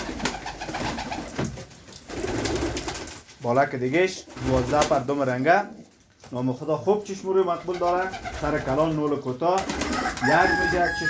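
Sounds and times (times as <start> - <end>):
pigeons cooing: 9.7 - 11.0.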